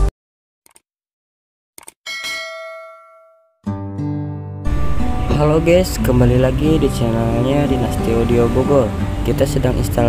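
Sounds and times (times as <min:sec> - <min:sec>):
bell-like notification ding: 0:02.1 - 0:03.5
music: 0:03.7 - 0:10.0.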